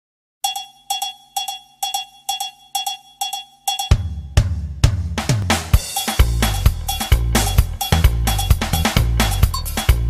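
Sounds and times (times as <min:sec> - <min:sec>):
drum kit and bass: 0:03.9 - 0:10.0.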